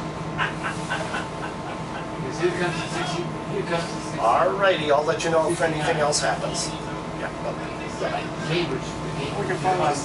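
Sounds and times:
bus drivetrain hum: 0:00.0 - 0:10.0.

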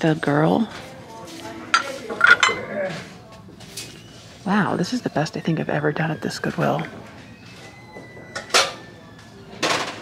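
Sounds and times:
ceramic dish clinking: 0:01.8 - 0:02.6.

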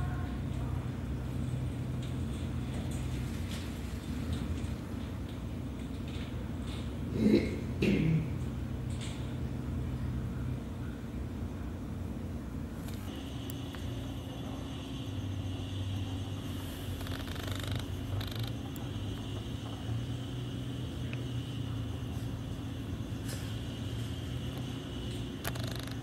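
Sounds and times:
low mechanical hum: 0:00.0 - 0:26.0
high whine: 0:12.9 - 0:26.0.

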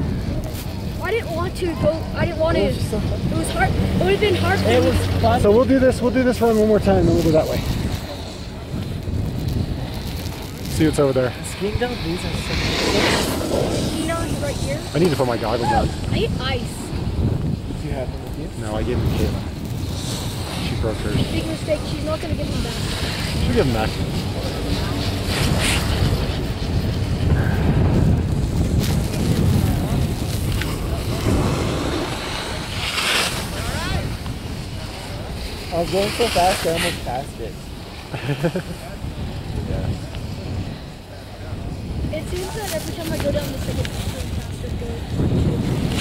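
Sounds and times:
faint voices: 0:00.0 - 0:28.2, 0:28.9 - 0:46.0
wind rumbling on microphone: 0:00.0 - 0:46.0.

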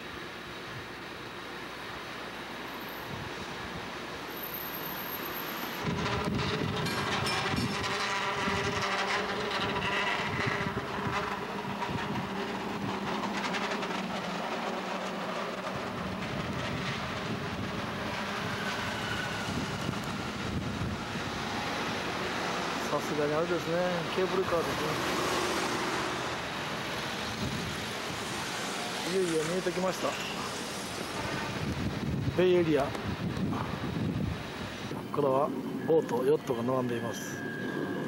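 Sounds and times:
cable car rattling on rails: 0:04.5 - 0:33.9.

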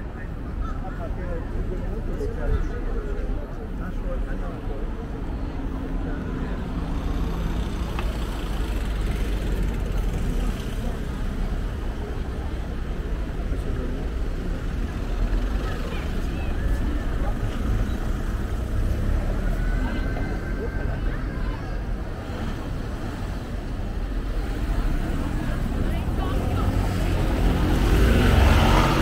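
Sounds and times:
people's voices: 0:00.0 - 0:29.0
cars driving over cobblestones: 0:04.6 - 0:29.0.

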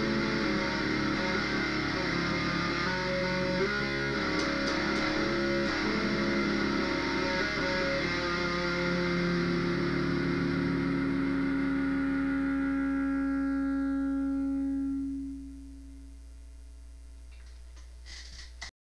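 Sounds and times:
electric guitar chord ringing: 0:00.0 - 0:17.1
low hum: 0:00.0 - 0:18.0.

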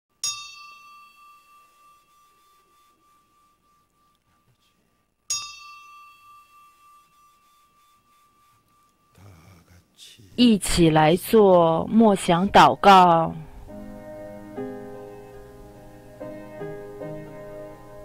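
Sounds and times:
small bell ringing: 0:00.2 - 0:04.2, 0:05.3 - 0:09.2.

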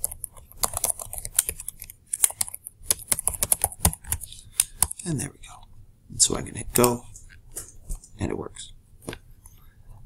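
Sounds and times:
typing on computer keyboard: 0:00.0 - 0:05.0.

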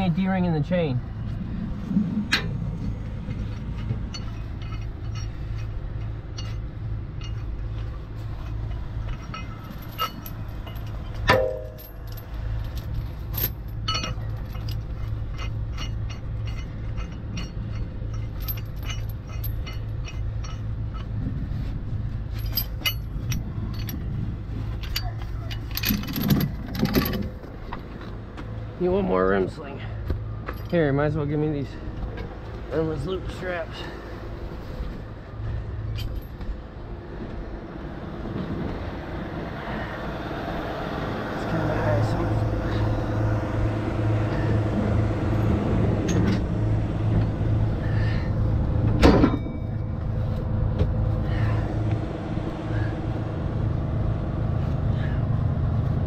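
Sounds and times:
metal chain clinking and rattling: 0:02.2 - 0:27.9, 0:30.4 - 0:32.4, 0:35.8 - 0:36.4, 0:42.0 - 0:50.4
metal clank: 0:02.3 - 0:21.2, 0:48.9 - 0:50.1.

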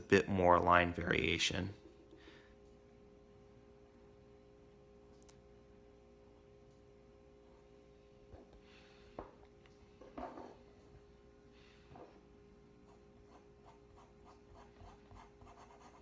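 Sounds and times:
pen scratching on paper: 0:12.9 - 0:16.0.

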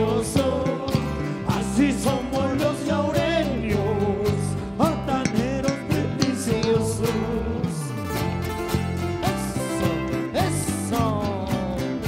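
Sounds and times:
steady drum beat: 0:00.0 - 0:07.5
melody with sliding notes: 0:00.0 - 0:12.0
sustained bass: 0:00.0 - 0:12.0.

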